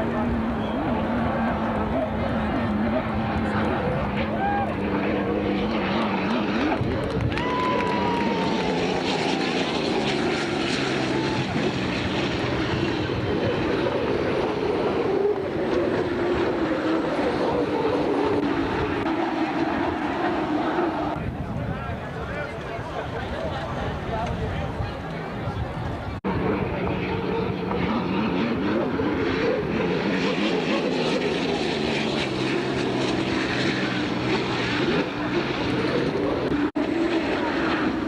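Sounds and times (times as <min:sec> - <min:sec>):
racing hydroplane engines: 0:00.0 - 0:38.0.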